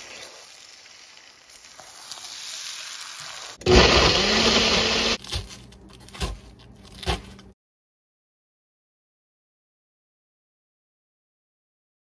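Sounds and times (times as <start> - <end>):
eggs sizzling in a frying pan: 0.0 - 3.8
blender motor whining: 3.6 - 5.2.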